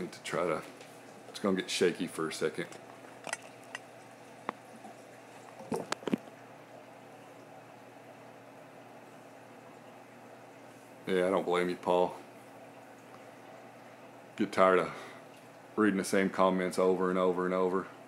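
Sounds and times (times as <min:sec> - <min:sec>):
aquarium pumps humming: 0:00.0 - 0:18.0
circulating water bubbling: 0:02.4 - 0:14.4.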